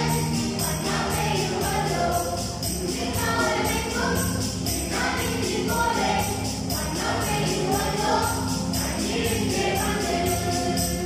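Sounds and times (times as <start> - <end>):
high percussion beat: 0.0 - 11.0
mixed choir singing a carol: 0.0 - 11.0.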